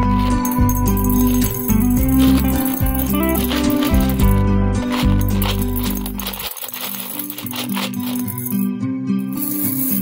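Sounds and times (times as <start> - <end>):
mints clicking into glass bowl: 0.0 - 8.7, 9.3 - 10.0
mints rattling in plastic box: 0.0 - 8.7, 9.3 - 10.0
background music: 0.0 - 10.0.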